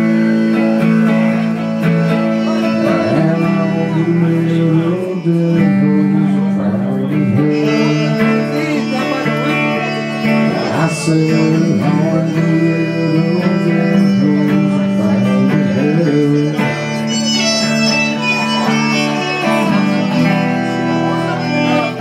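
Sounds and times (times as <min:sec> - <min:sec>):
electric guitar chords: 0:00.0 - 0:22.0
fiddle playing: 0:00.0 - 0:22.0.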